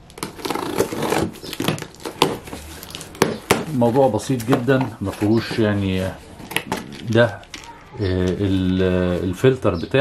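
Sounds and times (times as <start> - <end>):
cardboard rustling and crackling: 0.1 - 9.4.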